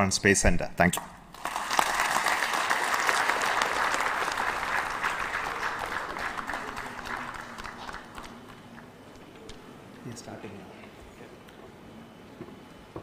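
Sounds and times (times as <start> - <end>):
audience applauding: 1.3 - 9.2.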